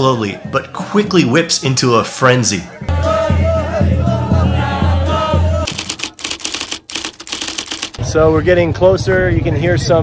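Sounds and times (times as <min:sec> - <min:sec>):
men chanting in unison: 0:02.8 - 0:05.7
fast sharp percussive beats: 0:05.7 - 0:08.0.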